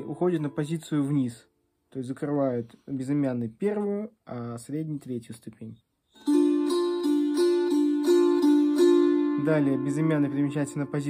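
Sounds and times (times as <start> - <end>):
psaltery strummed chord: 6.2 - 11.0.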